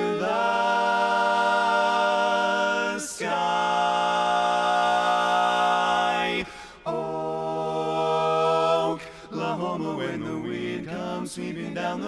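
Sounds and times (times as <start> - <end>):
a cappella quartet holding chord: 0.0 - 12.0.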